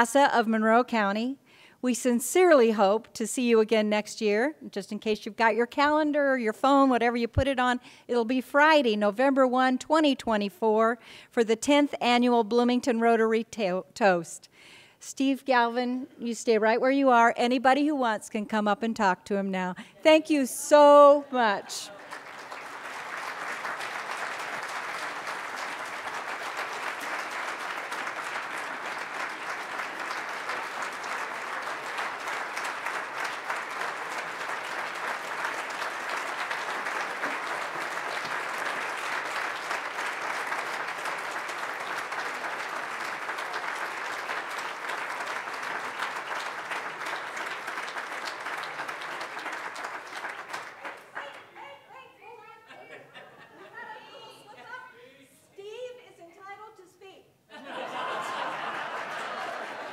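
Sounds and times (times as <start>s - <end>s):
audience clapping: 21.4s - 51.8s, 57.7s - 59.9s.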